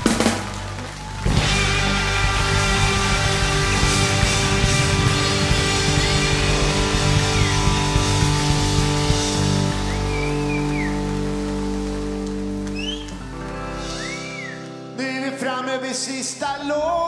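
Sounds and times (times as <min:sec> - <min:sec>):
hard rock band playing: 0:00.0 - 0:15.0
bent electric guitar notes: 0:01.2 - 0:15.0.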